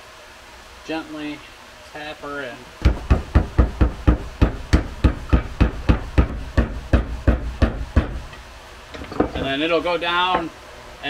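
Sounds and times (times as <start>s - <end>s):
mallet tapping metal: 2.8s - 8.4s.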